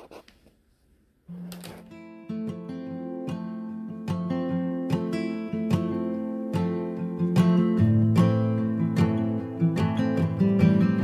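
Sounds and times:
marker scratching on paper: 0.0s - 0.3s
acoustic guitar music: 1.3s - 11.0s.

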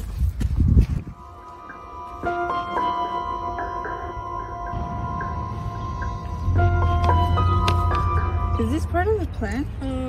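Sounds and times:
film score with held notes: 1.1s - 9.4s
low drone: 1.1s - 10.0s.

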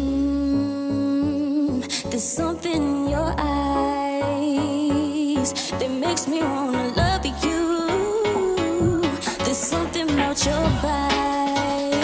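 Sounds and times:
dance track with deep bass: 2.2s - 12.0s.

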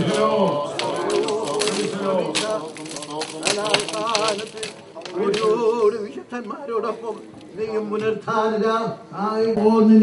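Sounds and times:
voices singing: 0.0s - 8.7s.

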